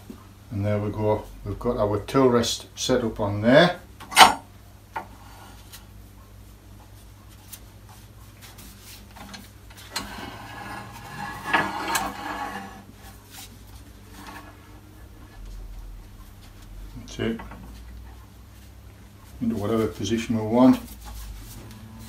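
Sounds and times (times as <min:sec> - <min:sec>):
faint steady hum: 0:00.0 - 0:22.0
metal scraping slide: 0:09.9 - 0:12.9, 0:14.1 - 0:14.8.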